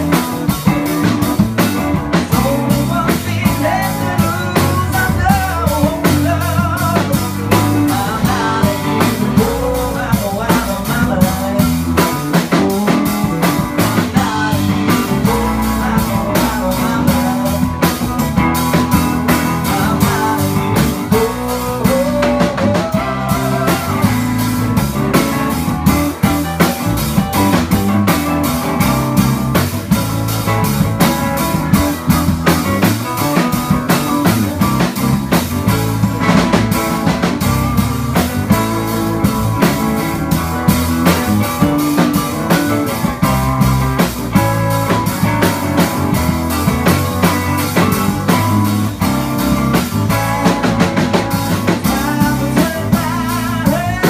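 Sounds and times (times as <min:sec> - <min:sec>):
drum kit beat: 0:00.0 - 0:54.0
electric guitar: 0:00.0 - 0:54.0
keyboard: 0:00.0 - 0:54.0.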